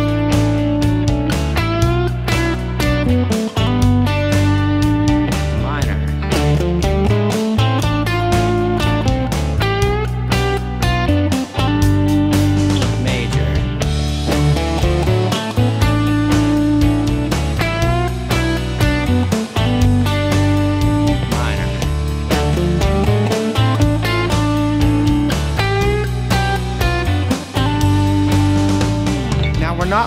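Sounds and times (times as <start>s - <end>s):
electric guitar lick with string bend: 0.0s - 29.6s
backing track with bass and drums: 0.0s - 30.0s.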